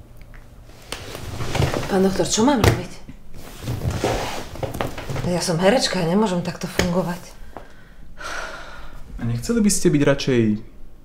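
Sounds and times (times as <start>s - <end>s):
woman breathing in quickly: 7.4s - 9.1s.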